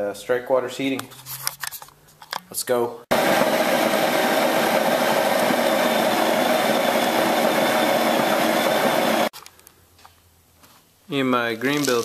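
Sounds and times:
grain mill motor whine: 3.1s - 9.3s.

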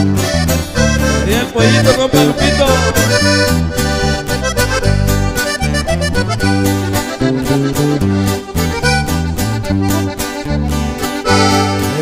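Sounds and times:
bass line: 0.0s - 12.0s
button accordion melody: 0.0s - 12.0s
strummed guitar: 0.0s - 12.0s.

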